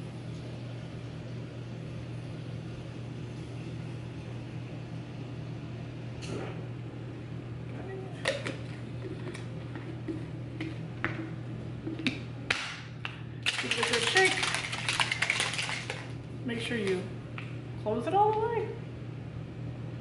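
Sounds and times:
shaker bottle rattling: 0:13.4 - 0:16.1.

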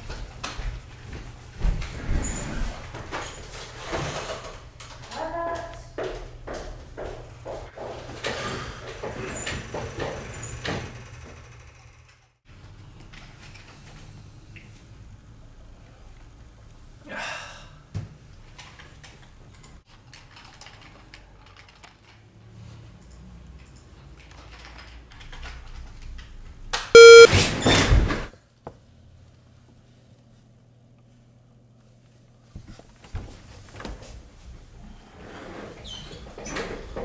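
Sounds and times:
loud electronic beep: 0:27.0 - 0:27.3.

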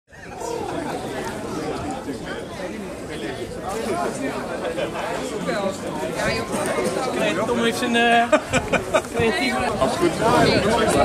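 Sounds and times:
people chatting: 0:00.1 - 0:11.0.

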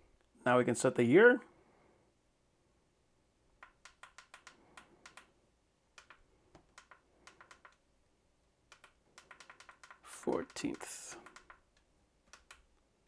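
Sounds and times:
alarm clock buttons clicking: 0:08.7 - 0:11.7.

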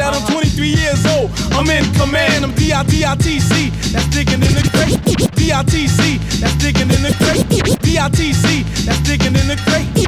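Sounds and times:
hip-hop beat with bass line: 0:00.0 - 0:10.0
record scratches: 0:04.4 - 0:05.4, 0:06.9 - 0:07.8.

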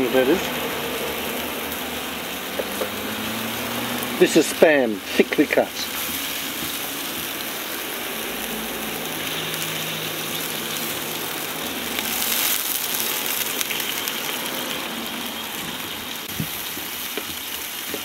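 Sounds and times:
meat sizzling in a pan: 0:00.0 - 0:18.0.

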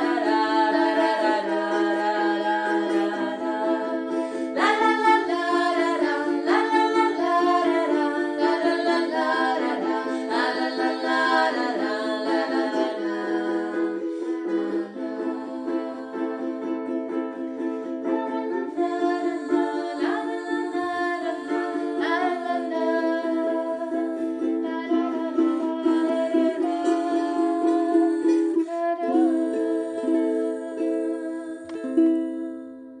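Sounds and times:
person singing wordlessly: 0:00.0 - 0:17.2, 0:18.0 - 0:32.9
ukulele strumming chords: 0:00.0 - 0:33.0.

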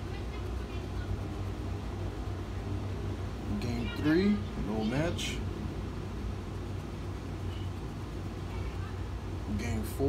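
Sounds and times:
steady low rumble: 0:00.0 - 0:10.0
coin scratching lottery ticket: 0:06.3 - 0:08.9.

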